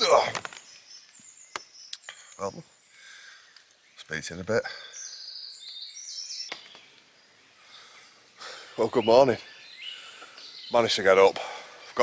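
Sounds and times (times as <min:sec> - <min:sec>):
songbird whistling: 0:04.8 - 0:07.0.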